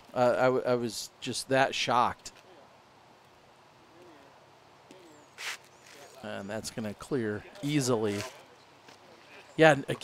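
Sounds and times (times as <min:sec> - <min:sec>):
short sharp hiss: 0:05.4 - 0:05.7.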